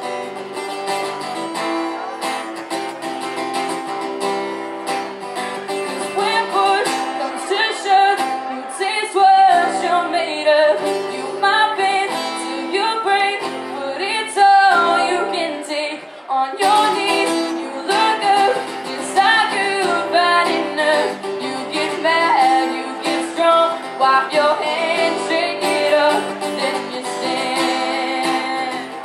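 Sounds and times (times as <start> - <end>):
acoustic guitar: 0.0 - 29.0
woman singing a country ballad: 6.0 - 29.0.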